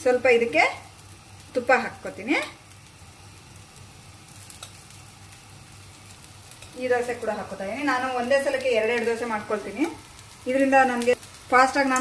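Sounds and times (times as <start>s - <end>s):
batter sizzling on a hot griddle: 0.0s - 12.0s.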